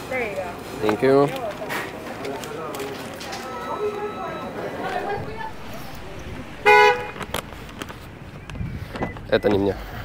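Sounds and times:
car horn honk: 0:04.9 - 0:08.2.

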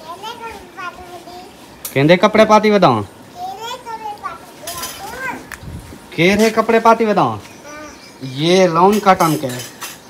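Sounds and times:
toddler babbling: 0:03.3 - 0:05.5, 0:07.6 - 0:08.0.

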